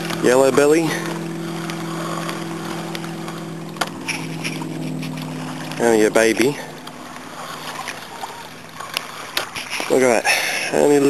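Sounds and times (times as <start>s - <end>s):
small waves lapping: 0.0s - 11.0s
wind: 0.0s - 11.0s.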